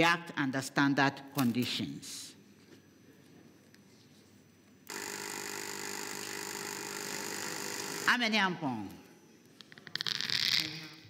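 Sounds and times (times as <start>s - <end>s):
steady electronic timer tone: 4.9s - 8.1s.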